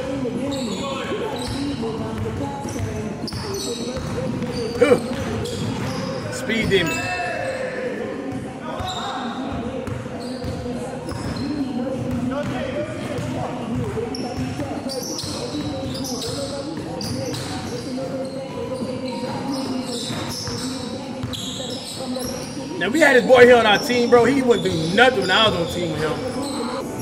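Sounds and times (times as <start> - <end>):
voices echoing in hall: 0.0 - 27.0.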